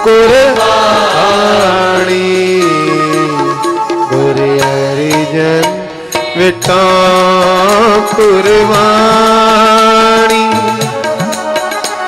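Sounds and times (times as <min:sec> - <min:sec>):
harmonium drone: 0:00.0 - 0:12.0
person singing devotional song: 0:00.0 - 0:12.0.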